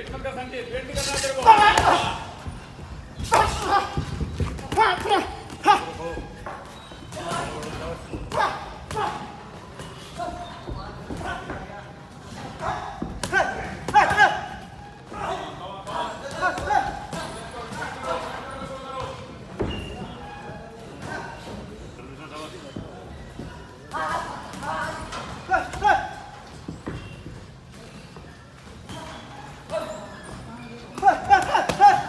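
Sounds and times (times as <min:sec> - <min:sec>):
people talking in background: 0:00.0 - 0:32.0.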